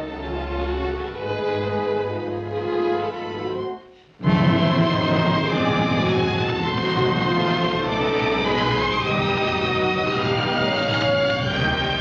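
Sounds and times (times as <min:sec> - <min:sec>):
orchestral strings sustained chords: 0:00.0 - 0:12.0.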